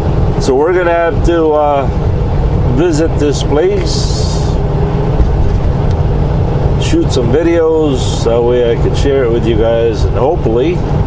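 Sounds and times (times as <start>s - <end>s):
truck engine and road noise: 0.0s - 11.0s.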